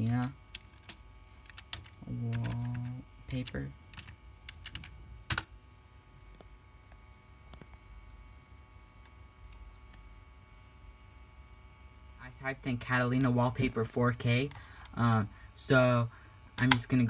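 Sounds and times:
computer keyboard key presses: 3.9 - 5.5.

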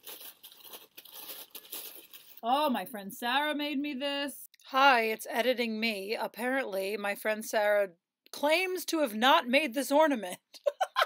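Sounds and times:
tissue paper rustling and crinkling: 0.0 - 2.4.

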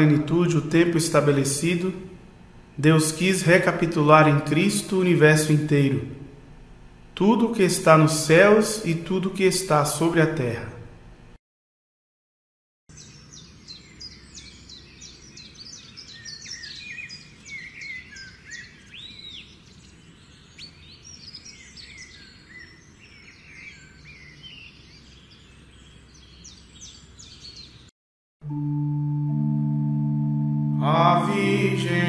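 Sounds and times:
birds chirping and singing: 12.9 - 27.9.

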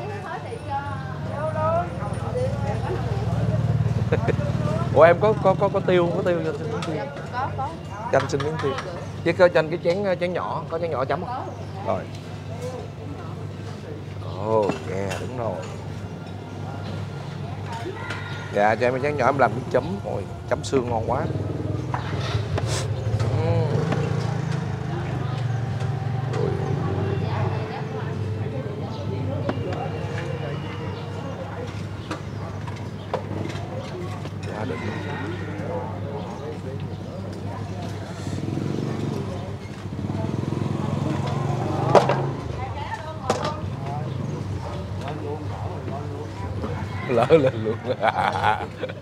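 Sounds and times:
engine rumble of traffic: 0.0 - 49.0
faint voices: 0.0 - 49.0.

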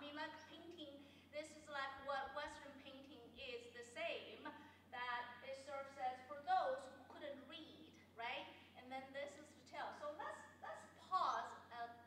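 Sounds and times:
woman lecturing: 0.0 - 12.0.

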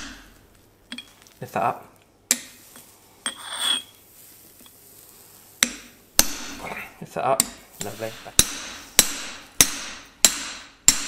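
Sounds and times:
high metallic ring: 3.2 - 4.0.

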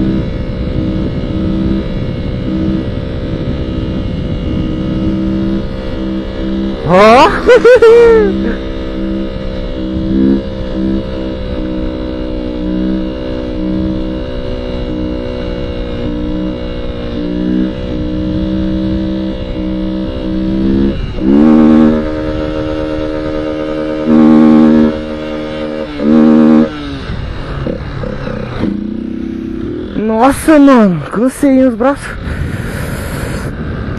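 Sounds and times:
small motorcycle engine: 0.0 - 33.9
wind and road noise: 0.0 - 33.9.

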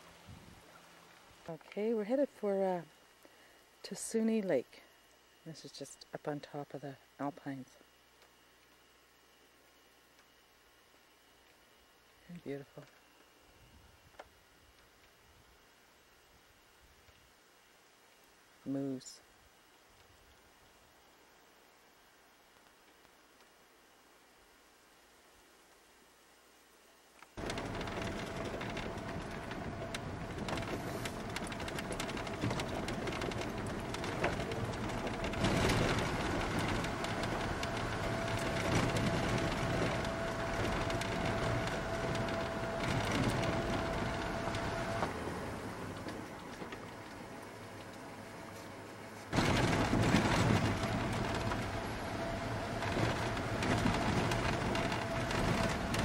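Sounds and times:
faint steady hum: 0.0 - 56.0
car engine running: 27.4 - 47.0
tyres on gravel: 27.4 - 56.0.

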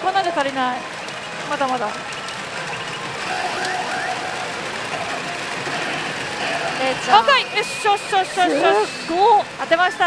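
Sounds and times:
pachinko machines rattling: 0.0 - 10.0.

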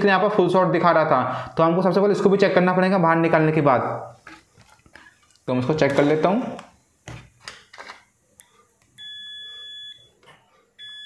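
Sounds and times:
multimeter continuity beep: 9.0 - 10.2, 10.8 - 11.0.

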